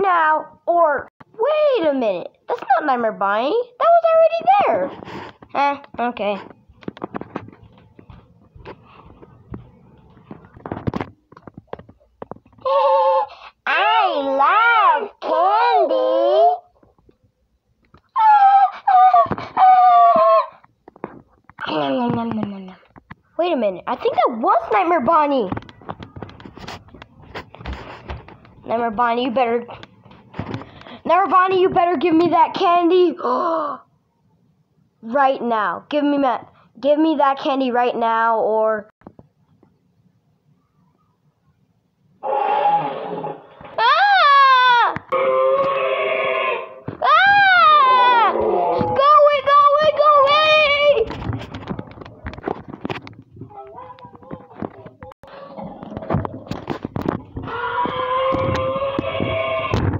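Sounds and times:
child squealing: 12.6 - 16.7, 18.2 - 20.6, 46.5 - 49.3, 57.4 - 59.8.

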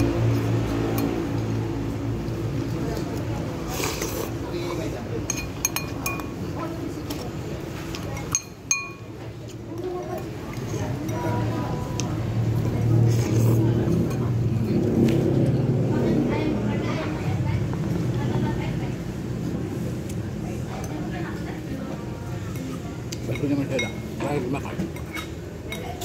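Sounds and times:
spoon clinking on ceramic bowl: 5.3 - 6.4, 8.2 - 9.1.

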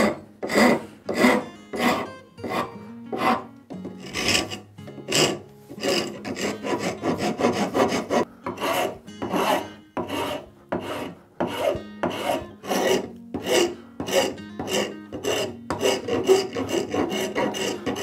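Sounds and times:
rasp scraping wood: 0.0 - 18.0.

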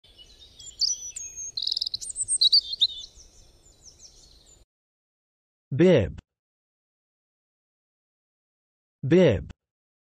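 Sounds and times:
birds chirping and trilling: 0.0 - 4.6.

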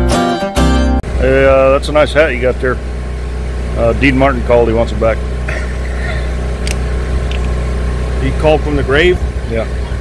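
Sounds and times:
engine idling: 1.0 - 10.0
light click: 6.6 - 7.5.

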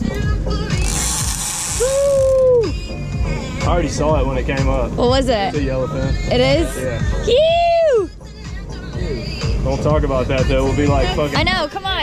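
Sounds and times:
fishing reel ratcheting: 0.8 - 2.3.

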